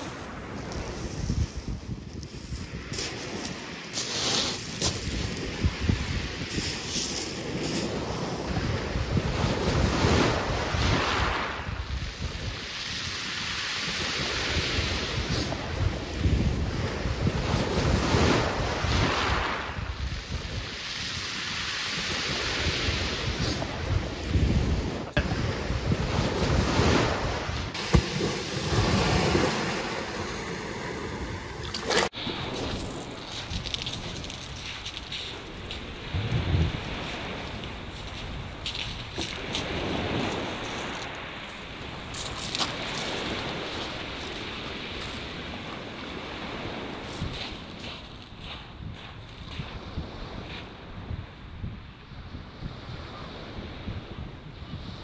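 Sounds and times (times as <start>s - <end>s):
sea waves breaking: 0.0s - 48.9s
wind buffeting microphone: 0.0s - 55.0s.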